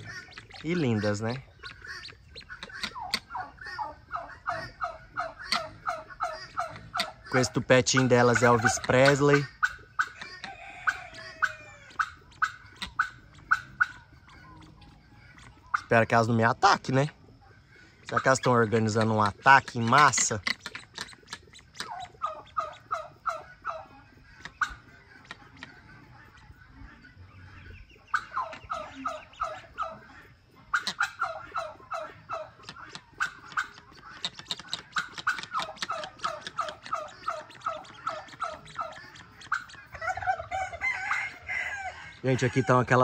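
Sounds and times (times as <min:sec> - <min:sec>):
guineafowl calling: 0:00.0 - 0:43.0.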